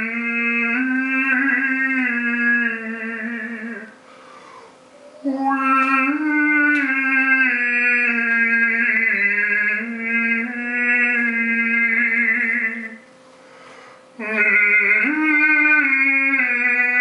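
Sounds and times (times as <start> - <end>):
man overtone singing: 0.0 - 4.0, 5.0 - 13.1, 14.2 - 17.0.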